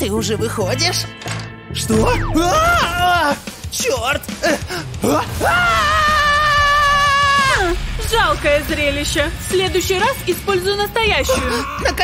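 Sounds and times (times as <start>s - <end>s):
woman screaming: 2.4s - 3.4s, 5.4s - 7.8s.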